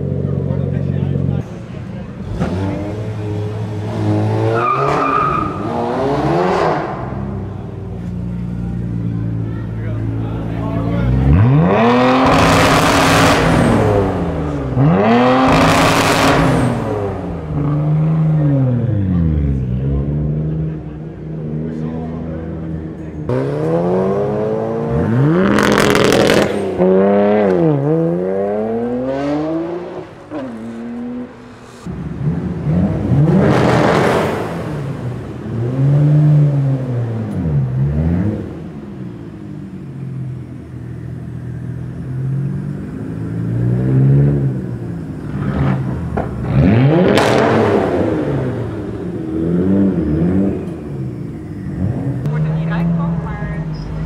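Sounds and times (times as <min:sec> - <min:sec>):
car engine accelerating hard: 0:00.0 - 0:54.0.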